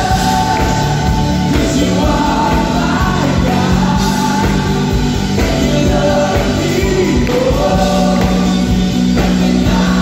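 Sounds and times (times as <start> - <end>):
drums: 0.0 - 10.0
electric guitar: 0.0 - 10.0
people singing: 0.0 - 10.0.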